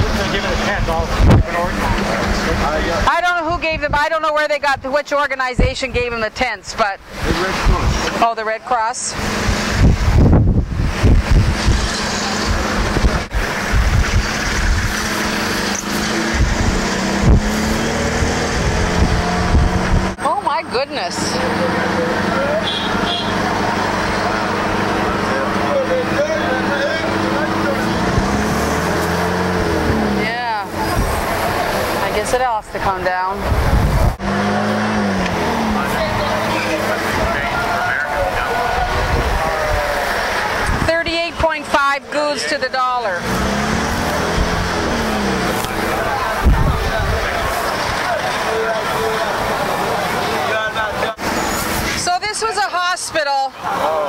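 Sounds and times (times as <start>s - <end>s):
road noise: 0.0s - 54.0s
vehicle engine hum: 0.0s - 54.0s
faint voices: 20.2s - 29.3s, 29.9s - 54.0s.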